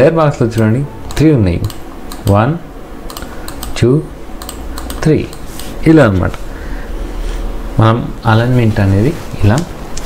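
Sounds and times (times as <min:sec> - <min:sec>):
keyboard and mouse clicks: 0:00.6 - 0:02.3, 0:03.1 - 0:03.8, 0:04.4 - 0:05.4.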